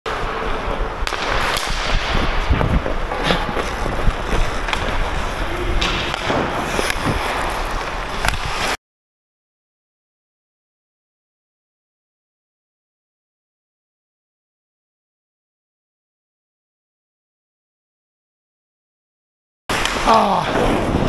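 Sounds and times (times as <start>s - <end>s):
hockey sticks and puck clacking: 0.1s - 8.8s, 19.7s - 21.0s
skates scraping ice: 0.1s - 8.8s, 19.7s - 21.0s.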